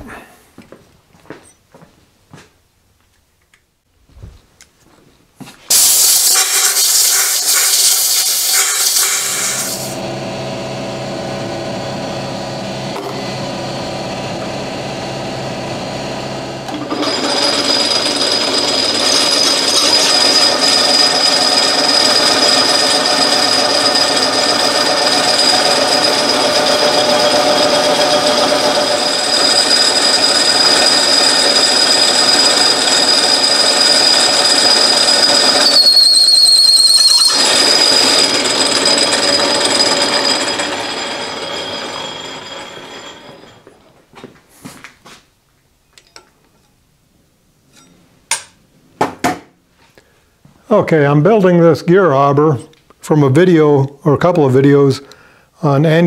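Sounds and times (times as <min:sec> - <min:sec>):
compressed air blow gun hissing: 0:05.7 - 0:10.0
lathe tool whining on metal: 0:05.7 - 0:43.8
metal lathe humming: 0:07.4 - 0:43.8.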